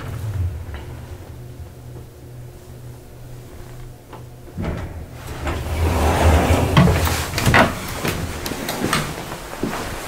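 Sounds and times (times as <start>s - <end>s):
elevator doors sliding open: 0.0s - 9.5s
elevator click: 3.8s - 9.2s.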